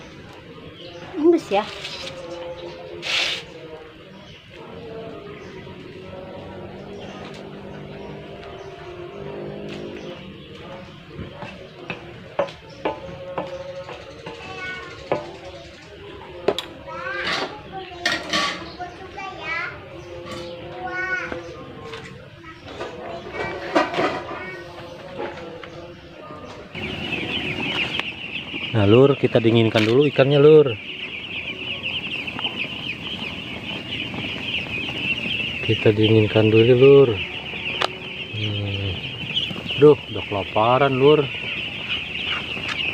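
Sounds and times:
background voices and calls: 0.0 - 42.9.

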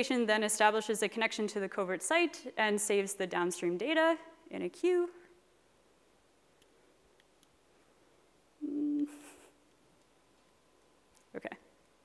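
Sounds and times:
woman humming: 8.6 - 9.6.

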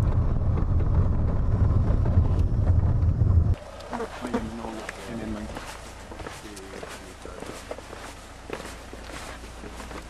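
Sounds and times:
irregular footsteps: 3.5 - 10.0
people's voices: 3.8 - 10.0.

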